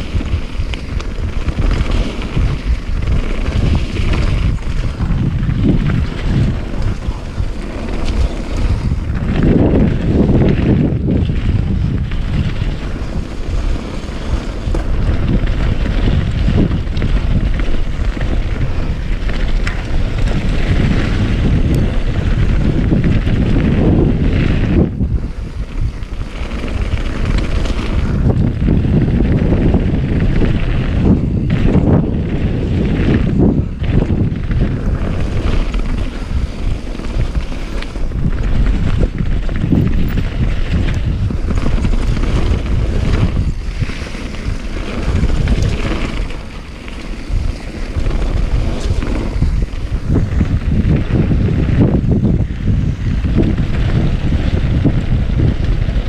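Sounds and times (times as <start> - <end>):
bike tyres rolling on dirt: 0.0 - 56.0
wind buffeting microphone: 0.0 - 56.0.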